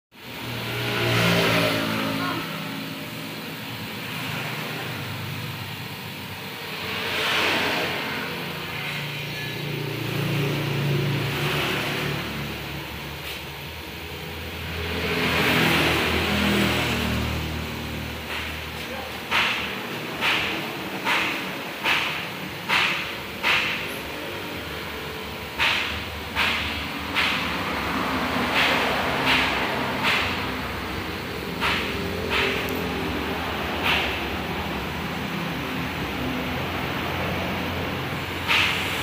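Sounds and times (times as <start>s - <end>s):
vehicles passing: 0.2s - 39.0s.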